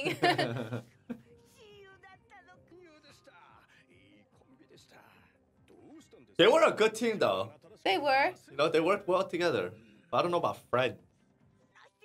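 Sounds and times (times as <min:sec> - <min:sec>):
man and woman laughing: 0:00.0 - 0:01.2.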